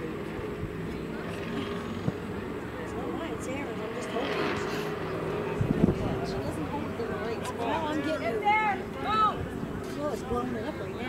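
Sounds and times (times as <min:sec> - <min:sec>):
distant indistinct voices: 0:00.0 - 0:11.0.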